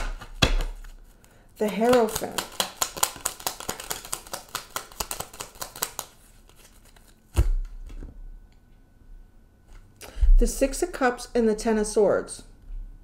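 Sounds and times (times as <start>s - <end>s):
cards shuffled by hand: 0.0s - 7.5s.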